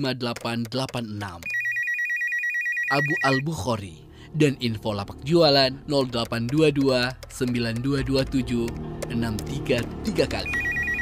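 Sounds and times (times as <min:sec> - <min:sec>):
electronic telephone ringing: 0:01.4 - 0:03.5, 0:10.4 - 0:11.0.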